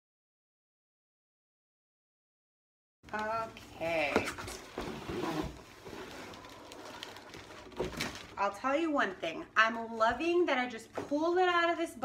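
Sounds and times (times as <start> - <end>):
plastic bag sliding rustle: 4.6 - 8.4.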